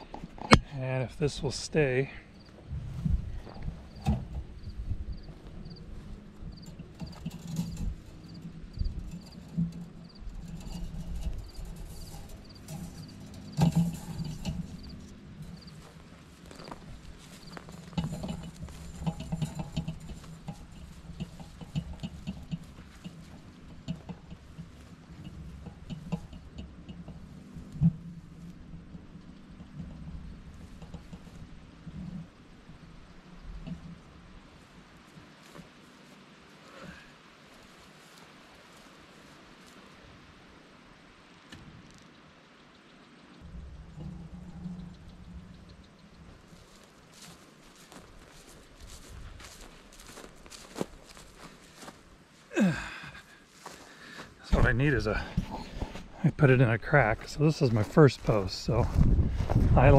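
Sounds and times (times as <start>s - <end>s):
wire dragged through dry grass: 1.4s - 40.9s, 43.4s - 59.9s
low rumble: 2.1s - 34.7s, 43.4s - 47.2s, 54.5s - 59.9s.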